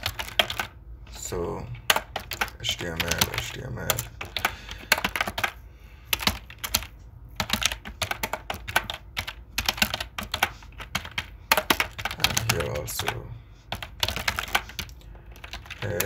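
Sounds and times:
computer keyboard typing: 0.0 - 16.0.

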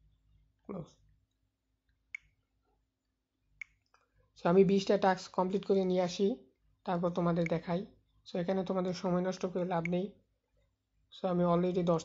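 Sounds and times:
person speaking: 0.7 - 1.0, 4.4 - 10.3, 11.1 - 12.0.

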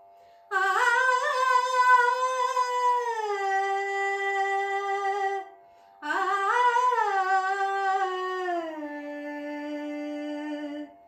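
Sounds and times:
woman singing wordless melody: 0.5 - 11.0.

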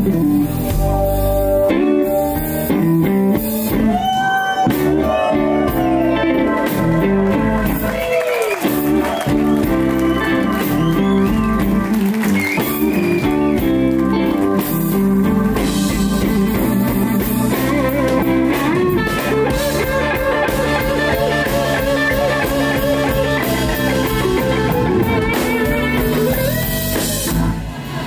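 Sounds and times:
drums: 0.0 - 28.0
electric guitar playing blues: 0.0 - 28.0.

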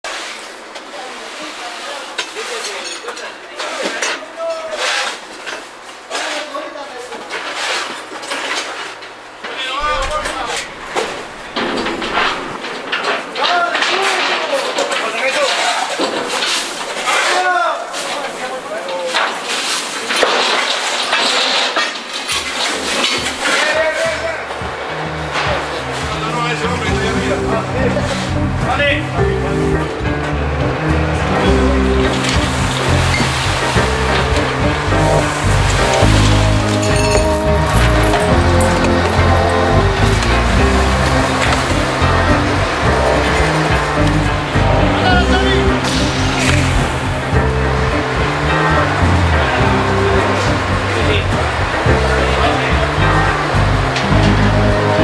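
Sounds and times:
indistinct voices: 9.6 - 19.3, 23.3 - 55.0
background music: 23.8 - 55.0
stepped bass line: 25.2 - 55.0.

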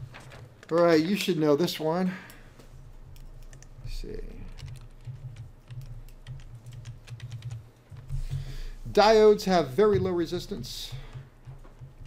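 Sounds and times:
laptop keyboard typing: 3.0 - 8.6, 9.9 - 12.0.

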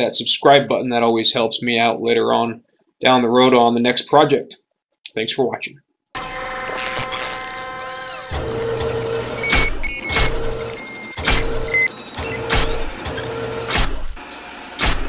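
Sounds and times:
machinery running: 6.2 - 15.0
short high beeps: 6.8 - 12.5
low repeating beep: 6.9 - 12.4
sharp metallic clanks: 8.0 - 14.2.

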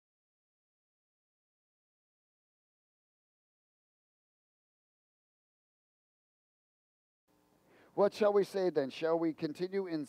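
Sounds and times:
man's voice: 8.0 - 10.0.

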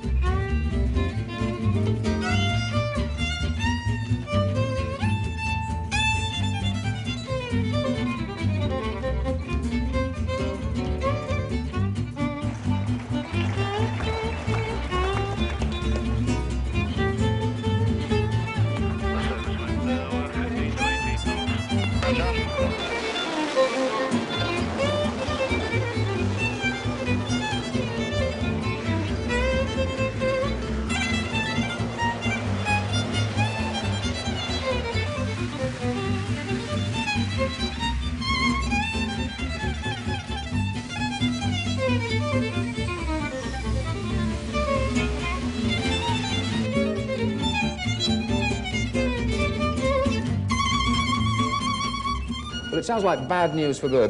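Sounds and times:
fiddle melody: 0.0 - 54.0
low accompaniment: 0.0 - 54.0.

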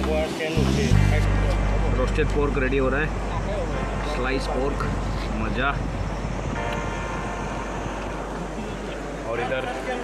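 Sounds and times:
wind rumbling on microphone: 1.8 - 9.7.

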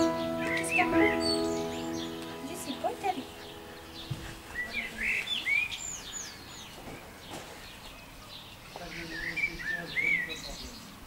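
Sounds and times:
songbird chirps and whistles: 0.0 - 7.4.

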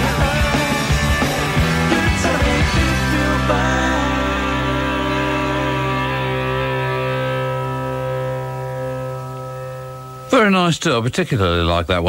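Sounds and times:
distorted electric guitar chord: 0.0 - 10.5.

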